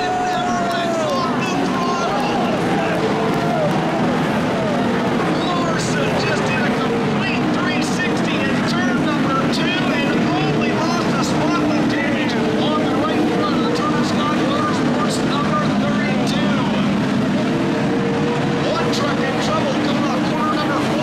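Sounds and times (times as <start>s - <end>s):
race truck engines droning: 0.0s - 21.0s
spectators talking: 0.0s - 21.0s.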